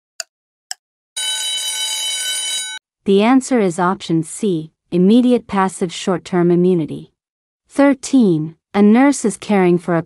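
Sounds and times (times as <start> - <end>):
loud ringing alarm: 1.2 - 2.8.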